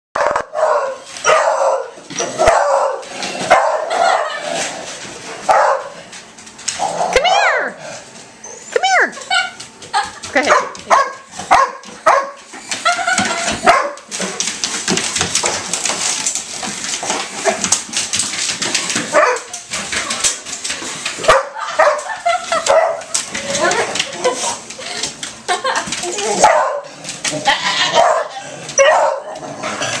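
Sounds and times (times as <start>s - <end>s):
dogs barking: 0.2s - 4.4s, 5.4s - 6.0s, 10.4s - 12.5s, 13.5s - 14.1s, 19.1s - 19.6s, 21.2s - 23.2s, 26.4s - 27.0s, 27.8s - 29.6s.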